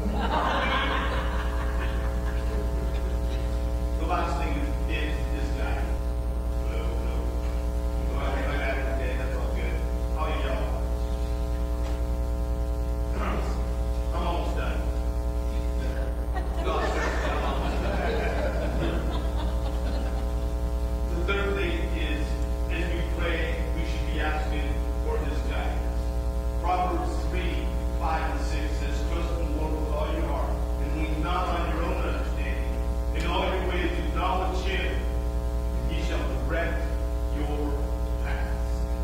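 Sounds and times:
electrical mains hum: 0.0 - 39.0
fast pulsing buzz: 0.0 - 39.0.

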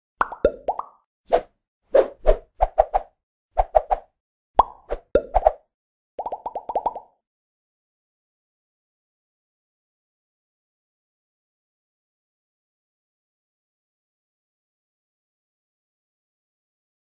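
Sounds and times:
cartoon pops and bloops: 0.2 - 1.0, 4.6 - 5.6, 6.2 - 7.2.

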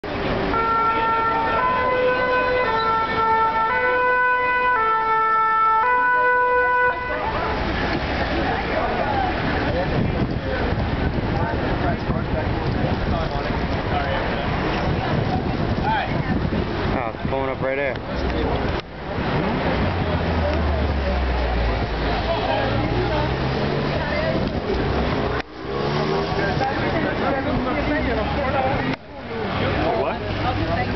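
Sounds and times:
street traffic noise: 0.0 - 30.9
fire engine two-tone siren: 0.5 - 7.6
chatter of people: 6.0 - 30.9.

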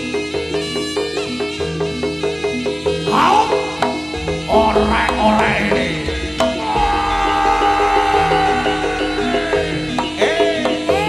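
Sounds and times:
percussive melody notes: 0.0 - 11.0
drum and gong bass: 2.9 - 11.0
long held sinking melody note: 3.1 - 10.7
sharp percussion strike: 3.1 - 11.0.

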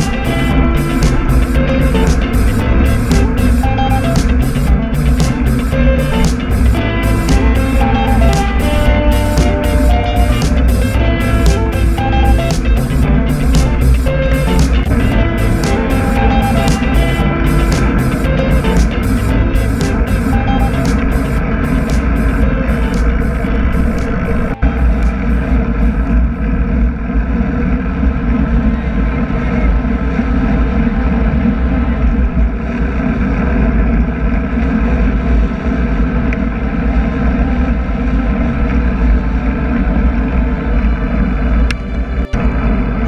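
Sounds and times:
faint music: 0.0 - 43.0
wind rumbling on microphone: 0.0 - 43.0.

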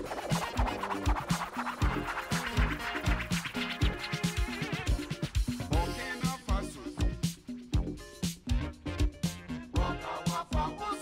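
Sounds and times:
record scratching: 0.0 - 6.4
dance music with kick drum: 0.0 - 11.0.

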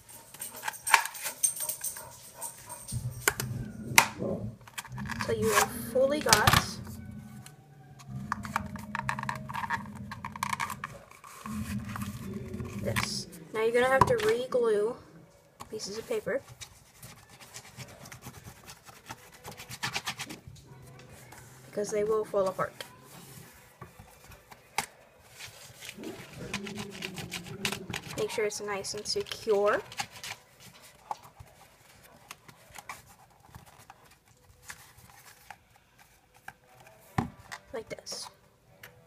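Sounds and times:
clicks and crackles: 0.3 - 13.2
paper crackling and rustling: 16.0 - 21.8, 22.7 - 37.7.

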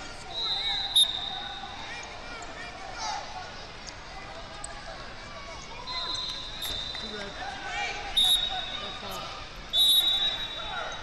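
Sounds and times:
referee whistle blasts: 0.2 - 1.8, 5.8 - 7.4, 8.1 - 11.0.

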